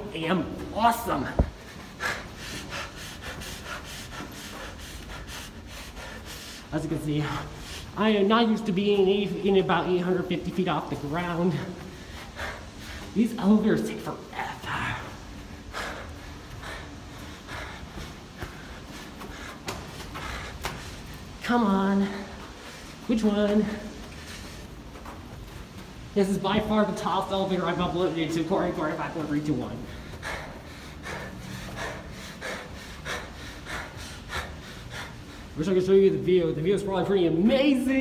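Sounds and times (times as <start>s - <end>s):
low room hum: 0.0s - 38.0s
person breathing: 1.6s - 8.0s, 11.5s - 13.2s, 15.0s - 25.6s, 29.8s - 35.6s
footsteps on carpet: 15.2s - 32.0s.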